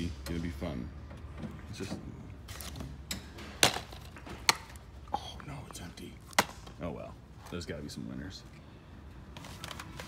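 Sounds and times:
plastic cases clacking: 0:03.4 - 0:04.8.

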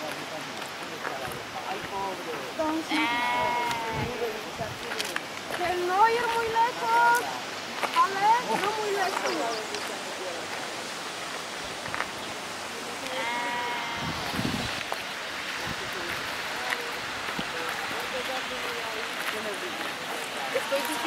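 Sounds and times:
wind noise: 0:02.6 - 0:06.9, 0:13.1 - 0:18.2
wind buffeting microphone: 0:03.0 - 0:07.2, 0:13.5 - 0:18.2.

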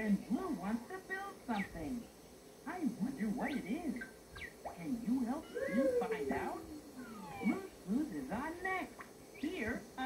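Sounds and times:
long falling call: 0:05.4 - 0:07.7.

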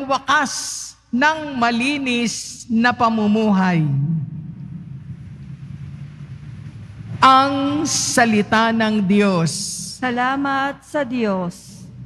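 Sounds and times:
person reading aloud: 0:00.0 - 0:04.0, 0:07.2 - 0:11.9
low room rumble: 0:01.4 - 0:12.0.

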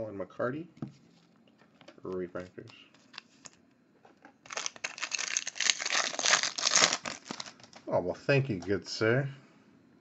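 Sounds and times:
card pack wrapper tearing: 0:04.4 - 0:07.9.

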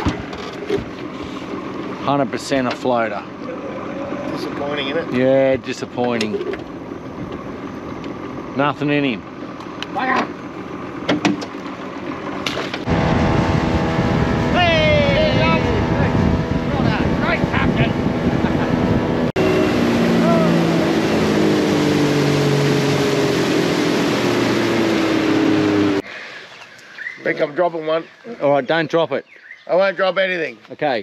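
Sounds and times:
outboard motor running: 0:00.0 - 0:28.8
water noise: 0:00.0 - 0:29.0
wind: 0:00.0 - 0:31.0
voices: 0:02.0 - 0:06.6, 0:14.4 - 0:21.4, 0:27.0 - 0:31.0.

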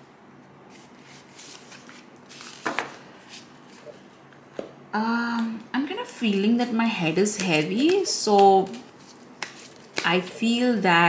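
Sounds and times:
cards rustling: 0:00.7 - 0:04.4, 0:07.3 - 0:10.6.

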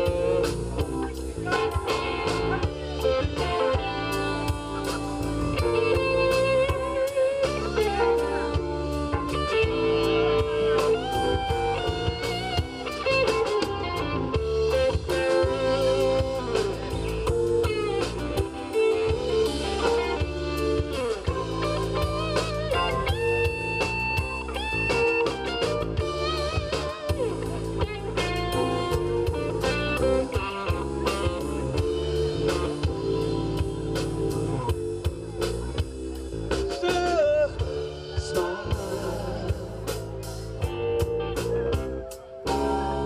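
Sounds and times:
blues rock band playing: 0:00.0 - 0:43.0
electric guitar: 0:00.0 - 0:43.0.

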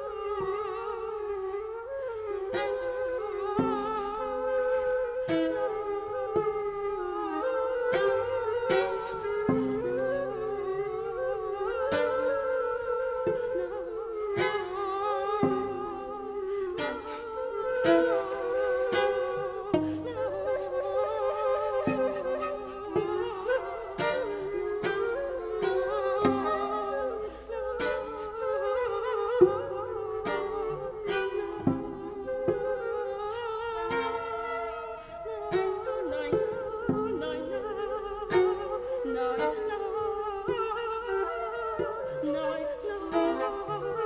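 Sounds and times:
flute and cello sustained notes: 0:00.0 - 0:44.0.

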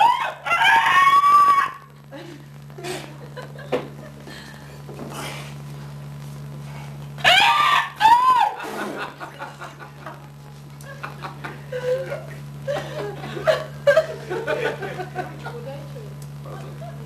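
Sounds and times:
low hum: 0:00.0 - 0:17.0
laughter: 0:02.1 - 0:04.3, 0:08.4 - 0:15.8.

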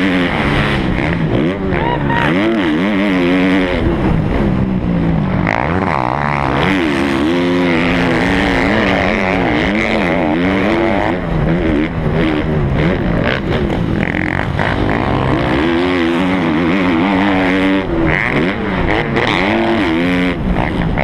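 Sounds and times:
motocross bike engine revving: 0:00.0 - 0:21.0.

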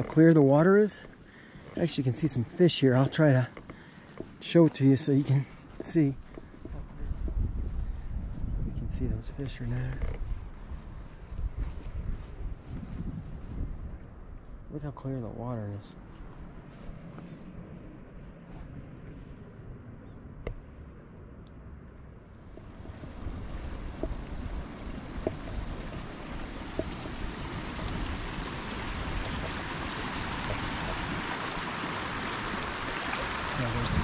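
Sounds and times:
wind rumble on microphone: 0:05.1 - 0:34.0
stream running over rocks: 0:22.5 - 0:34.0.

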